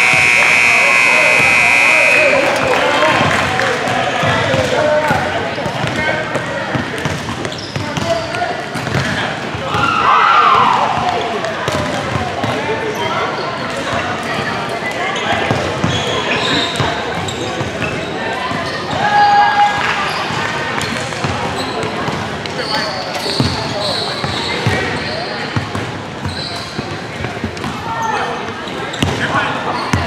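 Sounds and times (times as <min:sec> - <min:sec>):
many voices talking and calling: 0:00.0 - 0:30.0.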